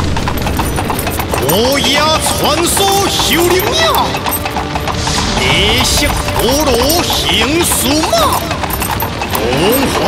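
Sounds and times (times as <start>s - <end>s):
horse hoofbeats clip-clopping: 0.0s - 10.0s.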